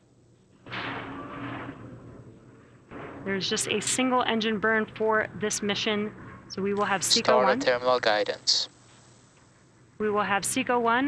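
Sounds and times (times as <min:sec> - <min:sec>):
faint hum: 0:02.2 - 0:11.0
steady hiss: 0:07.6 - 0:09.5.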